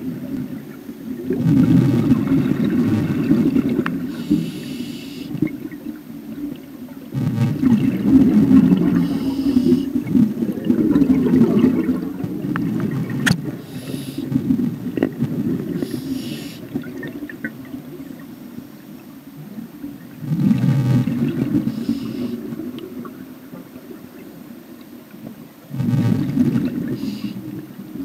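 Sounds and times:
regulator hissing inhalations: 0:04.1 - 0:05.4, 0:09.0 - 0:10.0, 0:13.6 - 0:14.3, 0:15.8 - 0:16.6, 0:21.7 - 0:22.4, 0:26.9 - 0:27.4
bubbling exhalations: 0:07.1 - 0:14.4.

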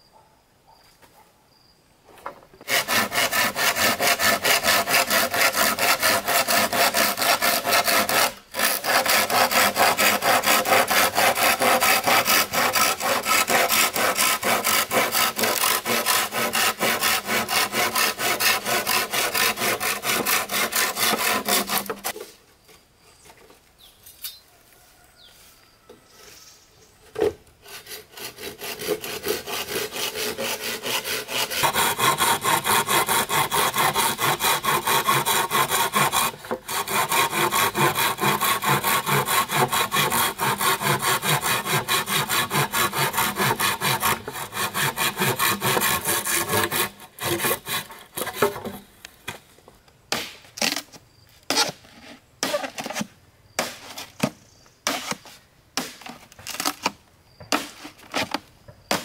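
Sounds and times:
hand saw cutting bamboo: 0:02.6 - 0:22.4, 0:27.6 - 0:48.9, 0:51.5 - 0:54.1.

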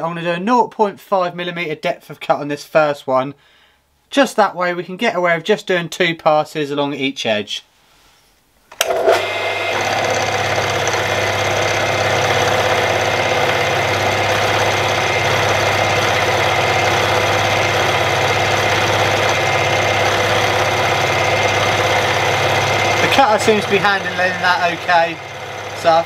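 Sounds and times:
cutter cutting metal: 0:08.8 - 0:26.0
milling machine spindle whining: 0:08.8 - 0:26.0.

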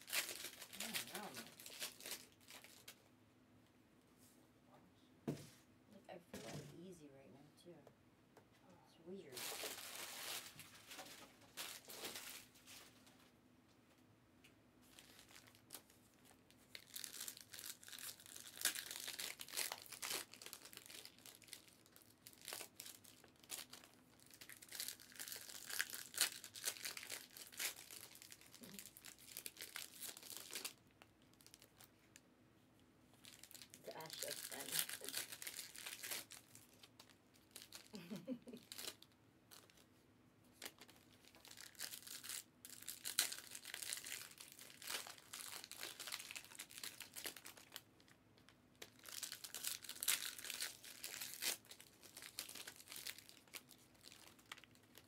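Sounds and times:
foil wrappers crinkling and tearing: 0:00.0 - 0:03.0, 0:09.2 - 0:13.1, 0:14.9 - 0:32.1, 0:33.2 - 0:39.9, 0:40.5 - 0:55.0.

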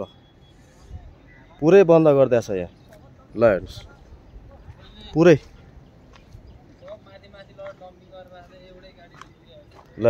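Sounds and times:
low steady background noise: 0:00.0 - 0:10.0.

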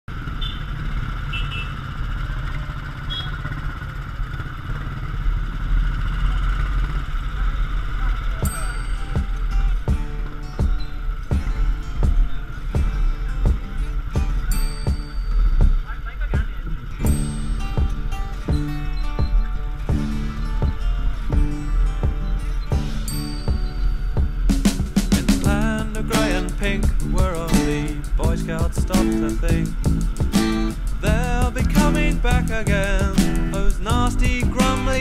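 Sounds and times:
motorcycle engine running: 0:00.1 - 0:35.0
road and wind noise: 0:00.1 - 0:35.0
music with steady beat: 0:08.4 - 0:35.0.

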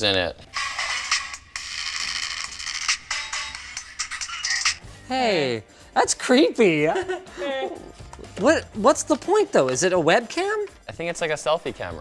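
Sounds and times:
tinny music from small speakers: 0:00.4 - 0:06.2.

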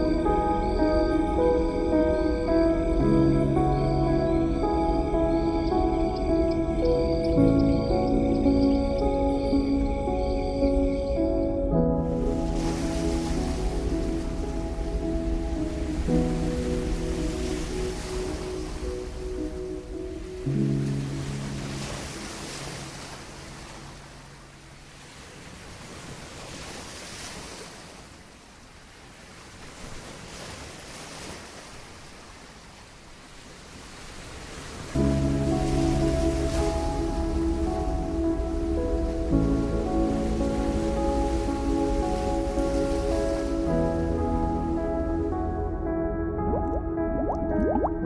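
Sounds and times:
ambient music sustained chords: 0:00.0 - 0:25.3, 0:34.9 - 0:48.0.

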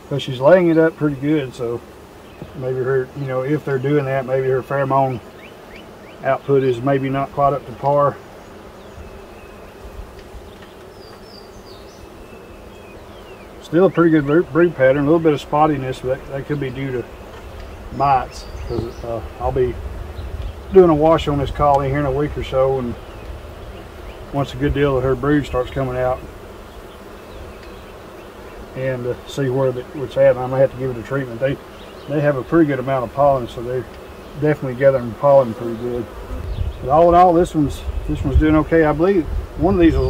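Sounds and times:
honeybees humming: 0:00.0 - 0:40.0.

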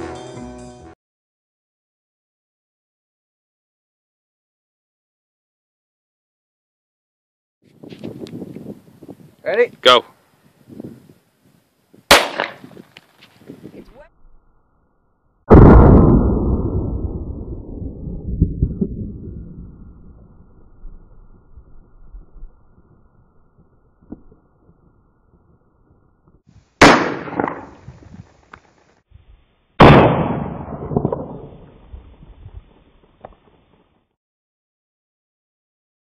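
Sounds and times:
loud pistol shot with echo: 0:12.1 - 0:12.7, 0:26.8 - 0:27.8, 0:29.8 - 0:31.6.

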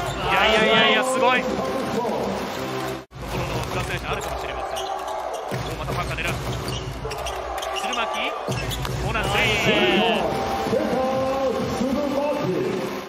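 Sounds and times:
large arena crowd noise: 0:00.0 - 0:13.0.

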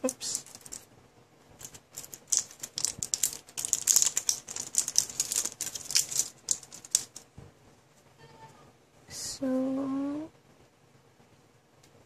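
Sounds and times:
plastic wrapper crinkling: 0:00.0 - 0:00.9, 0:01.6 - 0:07.3.

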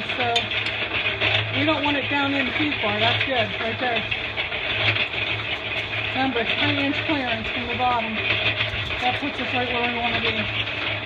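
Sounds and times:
motor running: 0:00.0 - 0:11.0.

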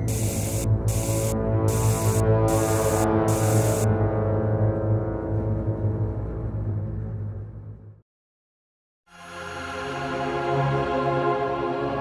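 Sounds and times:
aerosol spray can hisses: 0:00.0 - 0:03.9
dark droning music: 0:00.0 - 0:08.0, 0:09.1 - 0:12.0.

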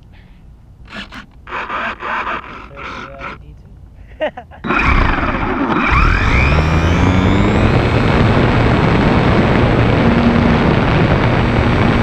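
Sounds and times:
electric motor and propeller: 0:00.8 - 0:03.5, 0:04.6 - 0:12.0
wind noise on microphone: 0:04.6 - 0:12.0.

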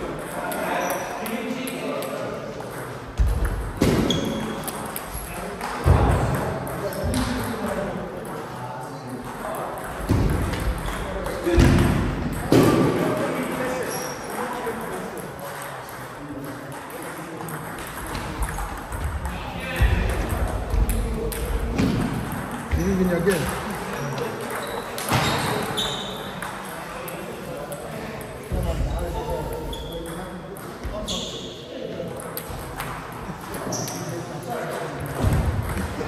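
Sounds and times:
people talking: 0:00.0 - 0:36.0.

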